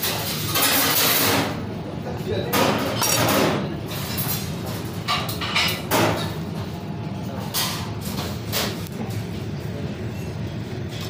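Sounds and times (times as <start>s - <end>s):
kitchen knocks and clatters: 0.0s - 1.6s, 2.4s - 6.7s, 7.4s - 9.3s
steady low hum: 1.4s - 11.0s.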